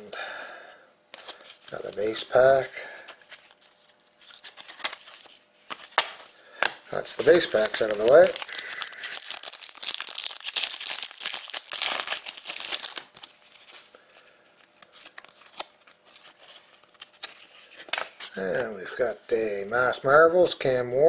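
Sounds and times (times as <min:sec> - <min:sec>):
cards ticking and sliding: 0:03.1 - 0:10.8
foil wrapper tearing and crinkling: 0:03.4 - 0:06.2, 0:07.2 - 0:13.8.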